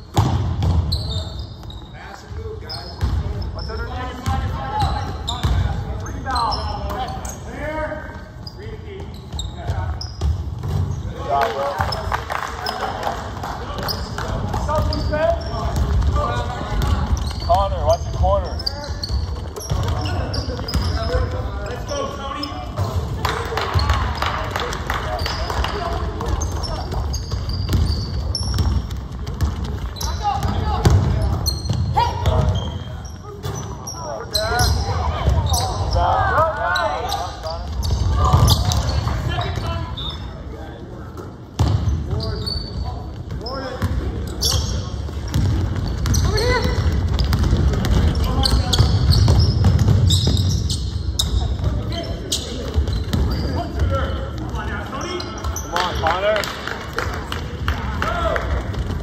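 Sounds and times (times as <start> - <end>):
sneakers squeaking on court: 0.0 - 11.2, 13.7 - 24.4, 25.1 - 40.4, 41.2 - 56.2
basketball bouncing on hardwood floor: 26.2 - 32.6, 45.1 - 50.7.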